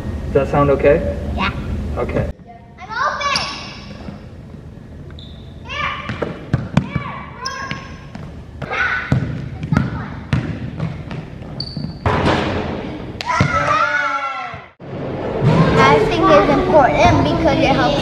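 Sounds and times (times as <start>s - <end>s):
sneaker squeaks: 3.2s - 12.2s
basketball bouncing on wooden floor: 6.0s - 12.6s
children shouting: 13.2s - 14.7s.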